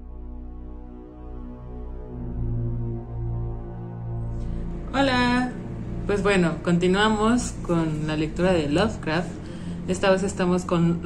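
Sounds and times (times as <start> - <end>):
dark low droning music: 0.0 - 11.0.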